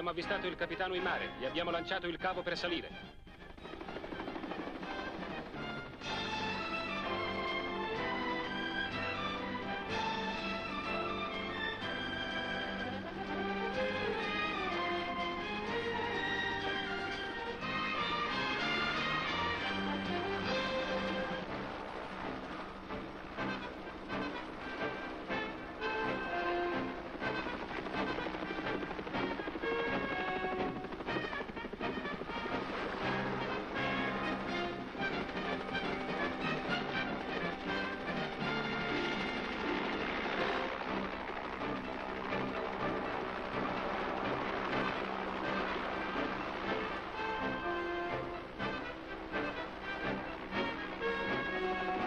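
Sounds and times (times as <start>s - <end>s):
film score music: 0.0s - 52.0s.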